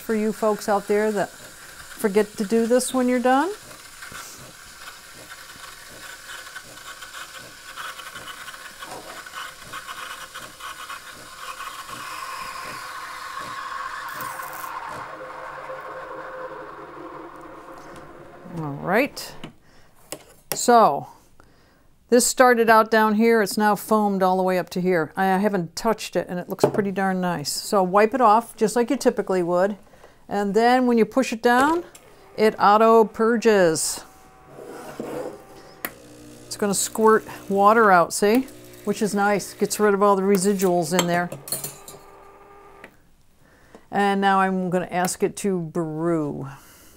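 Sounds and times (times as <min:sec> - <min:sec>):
steam wand frothing milk: 0:00.0 - 0:19.4, 0:31.2 - 0:43.0
machine humming: 0:00.0 - 0:19.5, 0:31.6 - 0:43.0
faint rubbing: 0:32.1 - 0:35.8.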